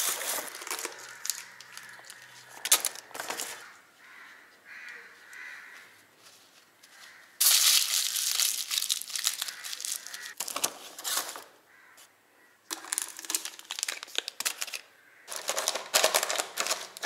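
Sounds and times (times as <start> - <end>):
aluminium foil crumpling: 0.0 - 3.7, 7.4 - 11.5, 12.7 - 17.0.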